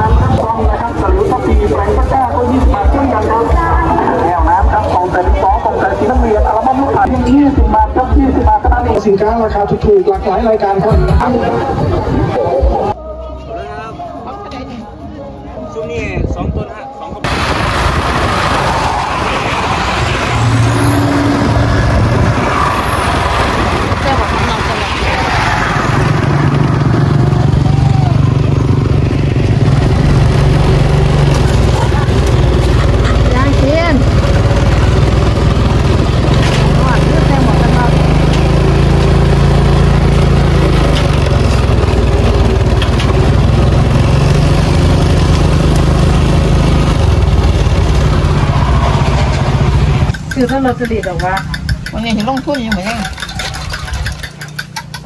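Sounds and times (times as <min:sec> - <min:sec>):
vehicle engine running: 0:00.0 - 0:11.3, 0:17.3 - 0:55.0
road noise: 0:00.0 - 0:16.2, 0:16.8 - 0:55.0
rushing wind: 0:16.0 - 0:37.2.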